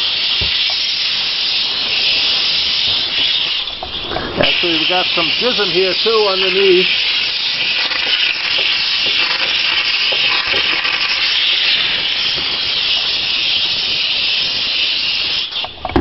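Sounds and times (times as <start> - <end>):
steam cleaner hissing: 0.0 - 16.0.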